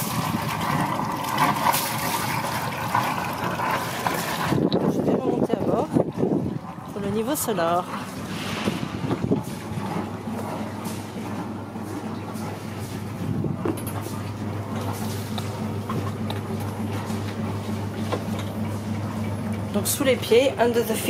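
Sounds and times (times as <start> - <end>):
marine diesel engine idling: 2.3 - 21.0
footsteps knocking on boat: 8.7 - 19.4.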